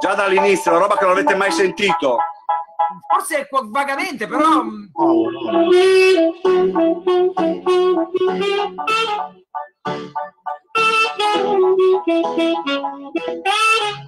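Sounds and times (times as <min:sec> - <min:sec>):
saxophone melody: 0:05.0 - 0:14.0.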